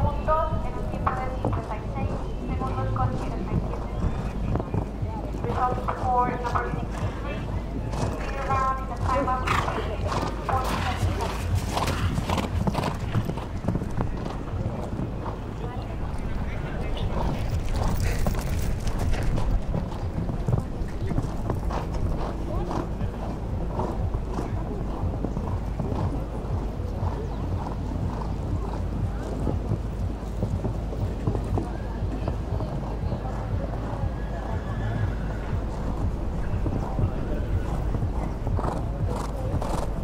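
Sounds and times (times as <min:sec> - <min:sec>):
horse hoofbeats on sand: 0:00.0 - 0:40.0
steady low rumble: 0:00.0 - 0:40.0.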